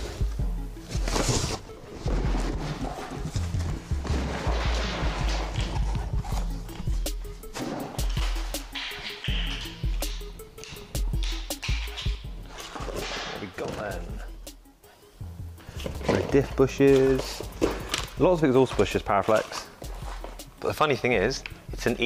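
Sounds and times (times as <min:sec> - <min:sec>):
music with pulsing bass: 0:00.0 - 0:01.1, 0:02.1 - 0:12.7, 0:14.0 - 0:19.2
cardboard rustling: 0:00.8 - 0:08.1, 0:15.6 - 0:20.4.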